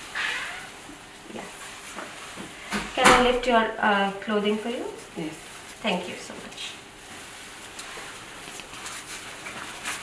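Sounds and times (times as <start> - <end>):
blood pressure cuff rustling: 6.9 - 10.0.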